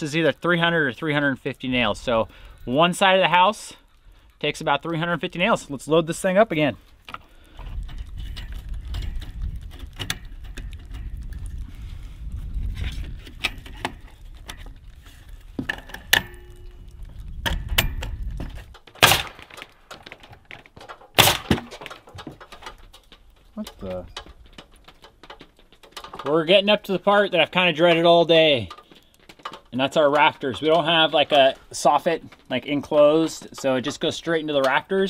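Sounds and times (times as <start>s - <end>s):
nails clicking and rattling: 17.4s - 31.2s.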